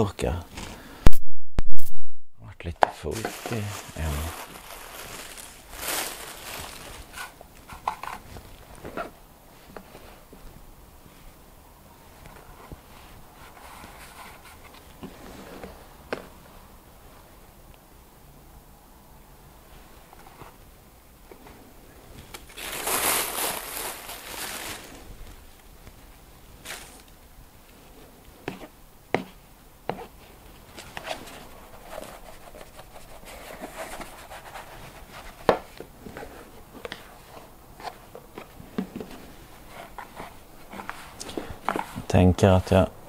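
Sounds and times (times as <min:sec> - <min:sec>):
plastic bag crinkling: 0:03.1 - 0:08.8, 0:22.2 - 0:25.2.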